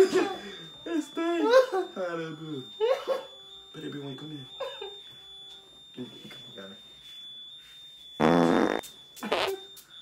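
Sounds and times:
buzzy fart noise: 8.2s - 9.6s.

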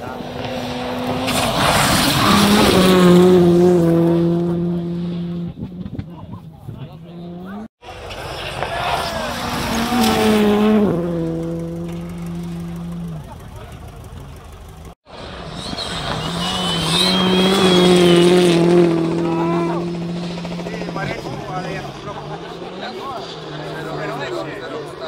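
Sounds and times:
car passing with gear changes: 0.0s - 25.0s
rally car engine revving: 0.0s - 25.0s.

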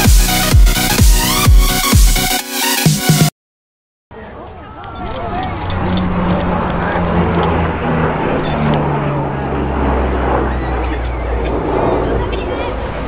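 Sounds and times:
propeller plane droning overhead: 4.2s - 13.0s.

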